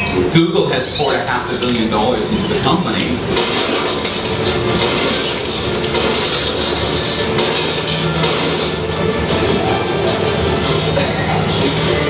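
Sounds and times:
music: 0.0s - 12.0s
game sound effects: 3.2s - 12.0s.

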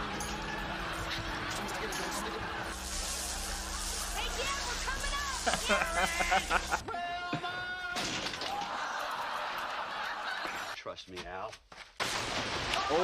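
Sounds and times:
voices: 1.4s - 8.0s
man yelling: 6.8s - 8.0s.

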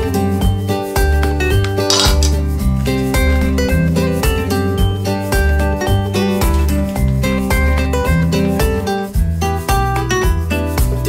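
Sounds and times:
chopsticks clinking on metal pot: 1.6s - 2.4s.

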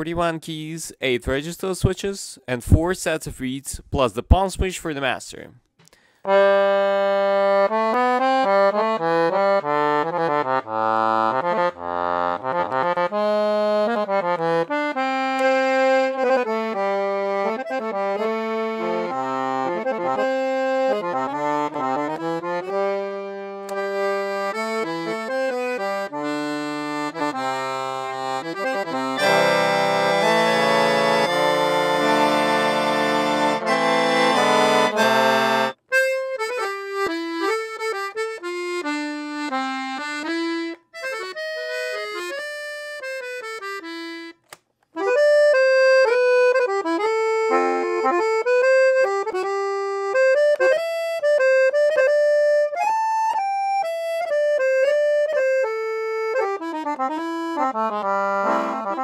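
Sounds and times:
accordion playing: 6.3s - 59.0s.

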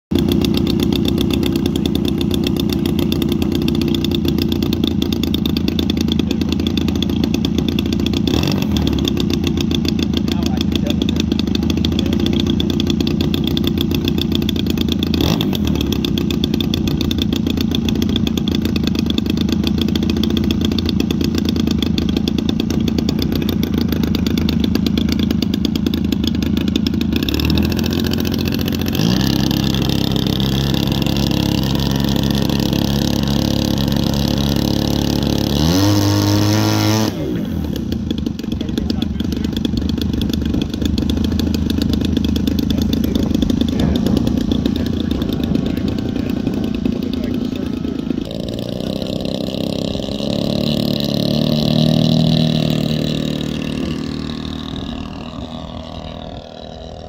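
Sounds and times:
model plane engine running: 0.1s - 57.0s.

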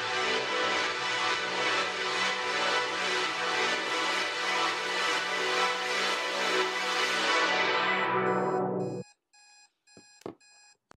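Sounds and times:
electronic timer beeping: 8.3s - 10.8s.

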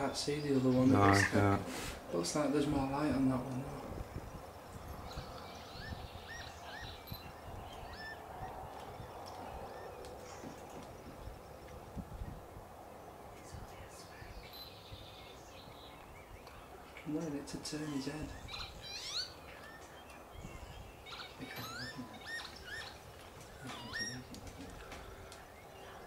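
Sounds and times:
low outdoor background noise: 0.0s - 26.0s
small bird chirping: 3.4s - 12.5s, 13.3s - 26.0s.

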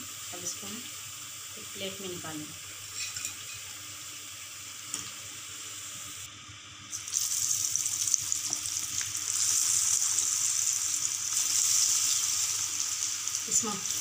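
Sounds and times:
deep-frying sizzling hiss: 0.0s - 14.0s
batter bubbling in oil: 6.3s - 14.0s.

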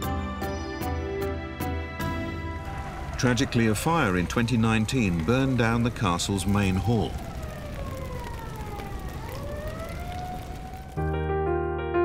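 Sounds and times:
emergency siren wailing: 2.0s - 11.1s
steady rushing noise: 2.6s - 11.0s.

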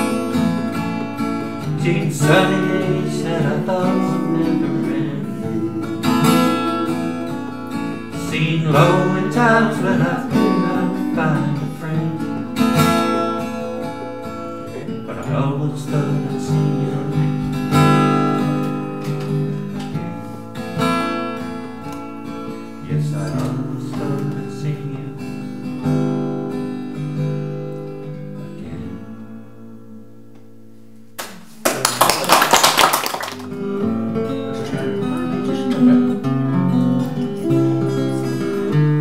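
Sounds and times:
acoustic guitar strumming: 0.0s - 31.6s, 33.3s - 39.0s.

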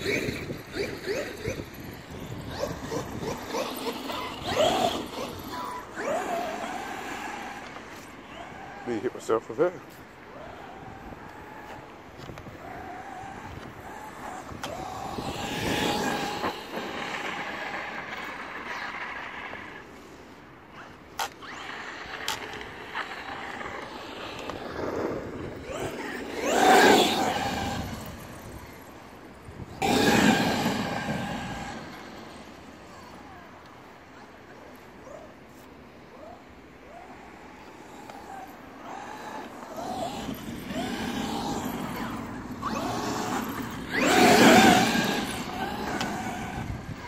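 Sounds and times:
rc truck motor whining: 0.0s - 20.2s, 20.8s - 33.7s, 36.2s - 47.0s.

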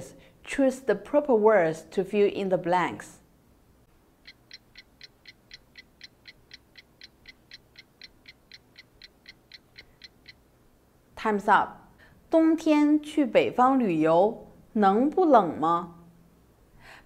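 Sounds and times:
faint timer ticking: 4.0s - 10.5s.

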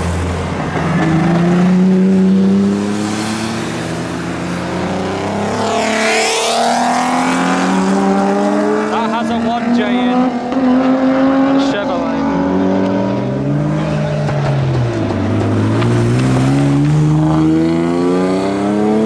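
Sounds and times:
car engines accelerating: 0.0s - 19.0s.

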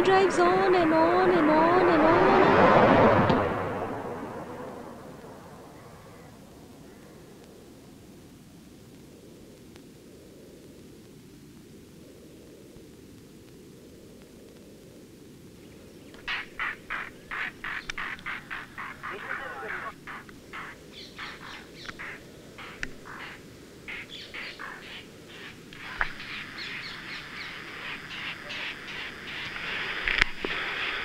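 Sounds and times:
faint outdoor ambience: 0.0s - 31.0s
bird calling in sharp notes: 16.2s - 29.5s.

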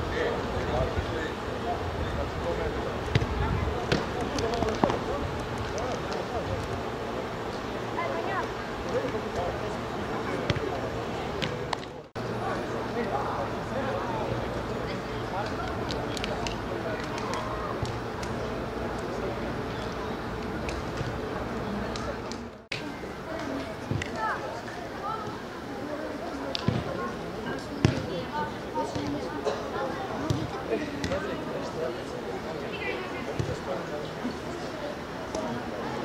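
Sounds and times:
distant spectators' voices: 0.0s - 36.0s
open-air noise: 0.0s - 36.0s.

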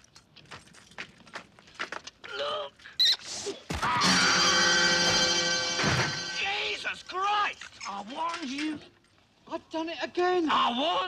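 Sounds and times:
footfalls on rough ground: 0.0s - 2.3s.

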